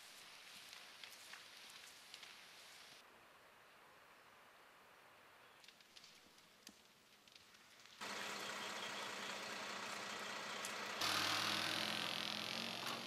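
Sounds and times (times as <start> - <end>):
tyres on gravel: 7.3 - 13.0
fire engine driving: 8.0 - 13.0.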